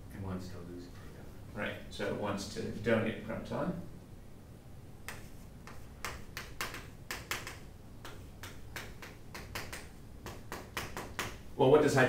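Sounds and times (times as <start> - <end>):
chalk tapping and scratching on chalkboard: 5.0 - 11.4.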